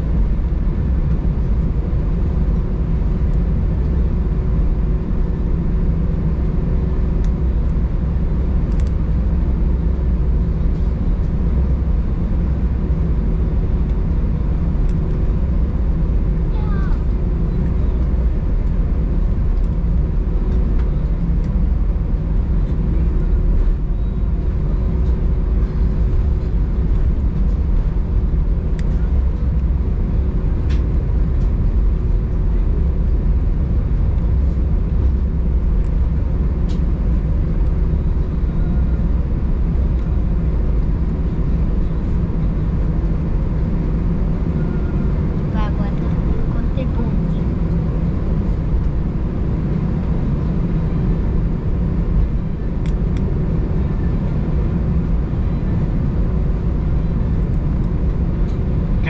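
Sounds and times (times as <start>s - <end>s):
aircraft cabin engine rumble: 0.0s - 59.0s.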